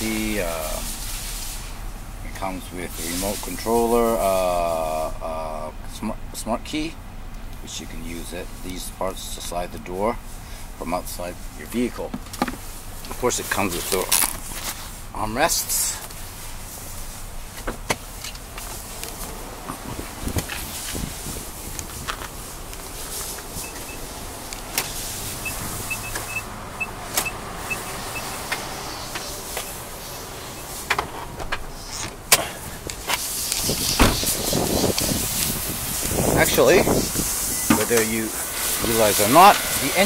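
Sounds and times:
faint engine idle: 0:00.2 - 0:33.7
short high warning beeps: 0:23.6 - 0:24.1, 0:25.4 - 0:28.4.

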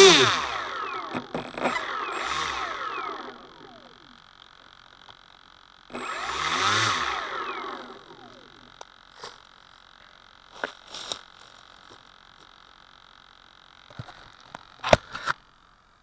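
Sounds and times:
electric motor and propeller revving: 0:00.0 - 0:05.1, 0:05.8 - 0:09.4
high whine: 0:00.0 - 0:14.1.

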